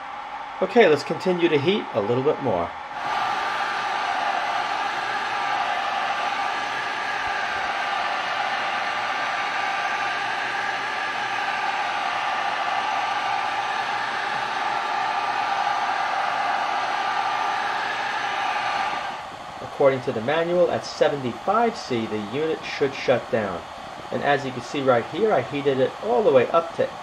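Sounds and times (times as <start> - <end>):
fan motor whine: 0.0 - 27.0.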